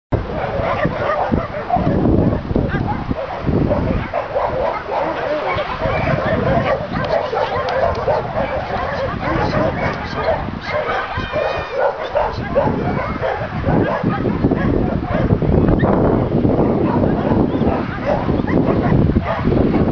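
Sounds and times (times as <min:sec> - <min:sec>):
dogs barking and yelping: 0:00.2 - 0:19.9
dog whining: 0:03.8 - 0:14.1.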